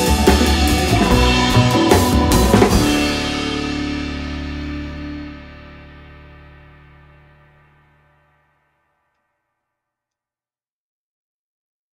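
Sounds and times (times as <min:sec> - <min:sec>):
drum and cymbal hit: 0:00.0 - 0:05.5
cymbal wash: 0:00.0 - 0:07.4
band's chord ringing out: 0:00.0 - 0:07.9.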